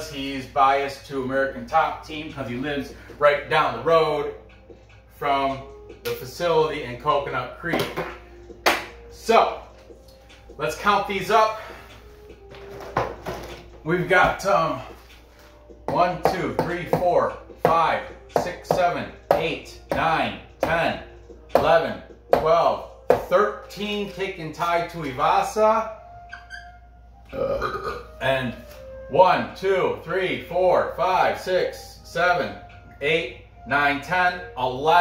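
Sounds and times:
marker squeaking on whiteboard: 26.3s - 26.9s
man burping: 27.3s - 28.2s.

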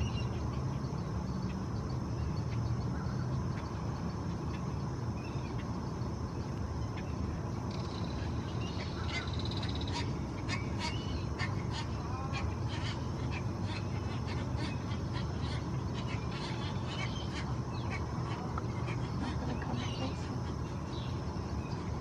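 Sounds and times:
birds chipping and clicking: 0.0s - 22.0s.

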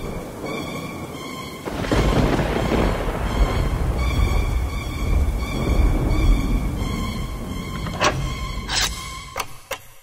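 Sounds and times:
thunder crack and rumble: 0.0s - 8.1s
dark ambient music: 0.0s - 10.0s.

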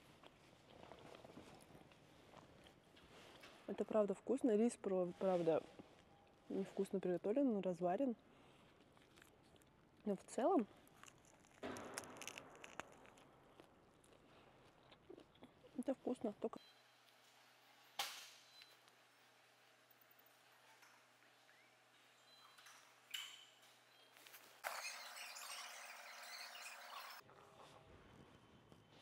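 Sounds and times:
soft chewing mouth clicks: 8.8s - 9.8s, 10.7s - 15.8s
soft crackle of biting food: 8.8s - 9.8s, 10.7s - 15.7s.

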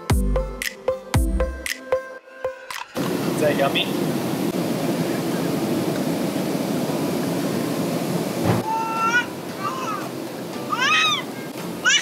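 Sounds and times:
airliner cabin engine rush: 3.0s - 11.9s
baby squealing: 8.6s - 10.1s, 10.7s - 12.0s.

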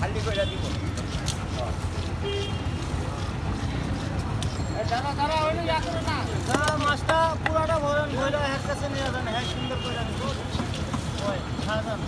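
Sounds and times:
low rumble of street traffic: 0.0s - 12.0s.

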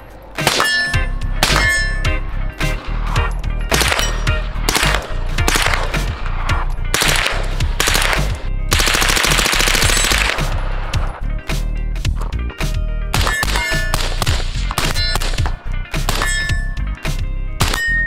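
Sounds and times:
background music with bass: 0.0s - 18.0s
rifle gunshots: 0.4s - 1.9s, 3.7s - 6.2s, 6.9s - 10.9s, 13.1s - 16.3s, 17.6s - 17.8s
steel target ringing: 0.4s - 2.8s, 3.7s - 5.6s, 16.1s - 16.9s
full-auto gunfire burst: 4.7s - 6.0s, 6.9s - 10.6s.

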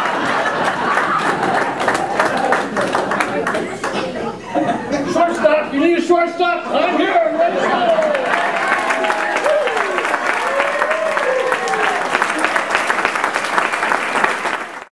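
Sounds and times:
audience applauding: 0.0s - 4.0s, 7.7s - 14.9s
voices cheering and laughing: 6.5s - 12.0s.

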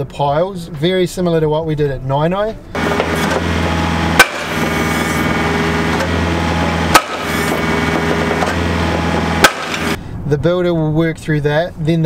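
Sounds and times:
engine running steadily: 2.7s - 10.0s
hammer striking pile: 2.8s - 10.0s.

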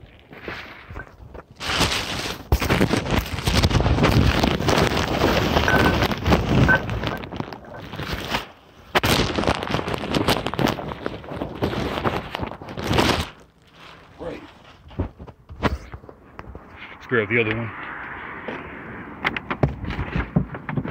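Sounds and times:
rustling handling noise: 0.0s - 17.0s.

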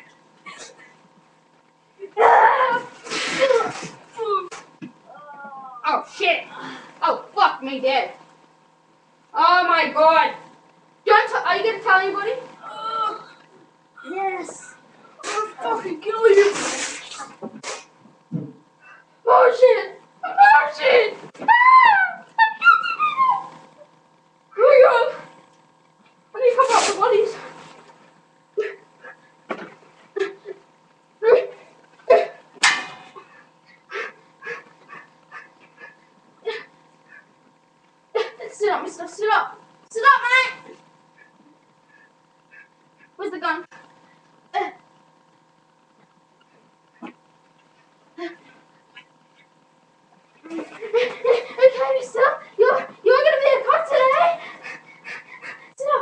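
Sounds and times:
high-pitched yelping and whining: 21.4s - 23.9s.

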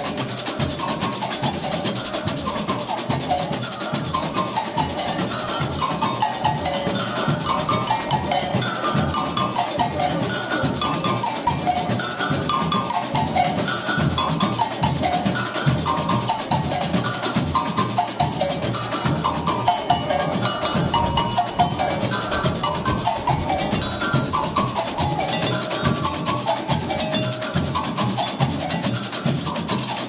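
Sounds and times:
agogo bells ringing: 0.0s - 30.0s
drums: 0.0s - 30.0s
fast shaker rattle: 0.0s - 30.0s.

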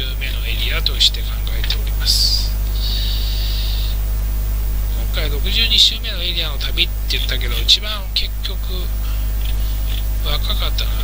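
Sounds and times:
low electrical hum: 0.0s - 11.0s
static hiss: 0.0s - 11.0s.

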